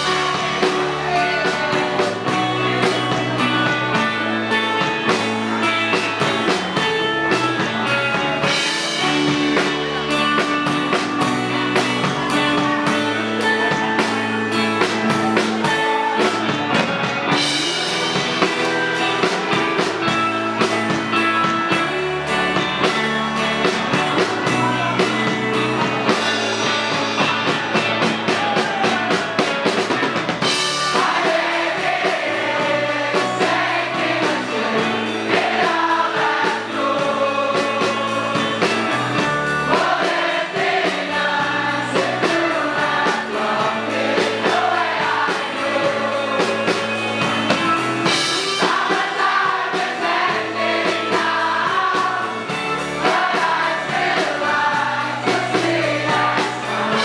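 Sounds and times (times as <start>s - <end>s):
many voices singing together: 0.0s - 6.9s, 30.4s - 57.0s
electric guitar: 0.0s - 40.0s, 40.6s - 57.0s
drum kit: 0.0s - 57.0s.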